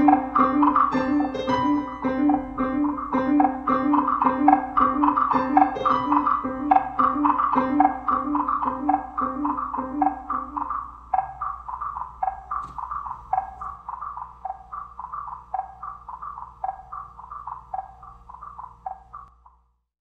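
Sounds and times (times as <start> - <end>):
piano: 0.0 - 10.6.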